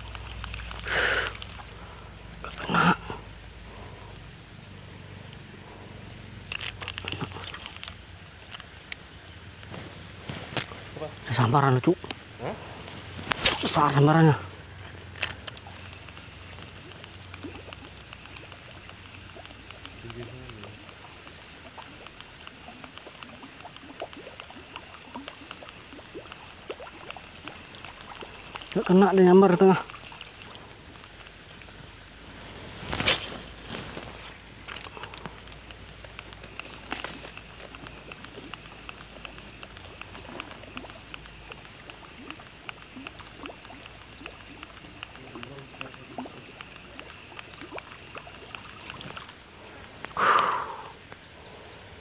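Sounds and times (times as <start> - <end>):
faint ticks: 0.0 - 52.0
high-pitched insect chorus: 0.0 - 52.0
lure splashing on water: 0.0 - 52.0.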